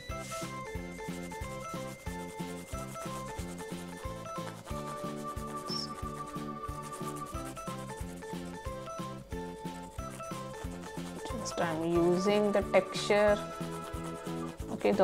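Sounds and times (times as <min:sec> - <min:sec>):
light background music: 0:00.0 - 0:15.0
crayon rubbing on cardboard: 0:00.1 - 0:15.0.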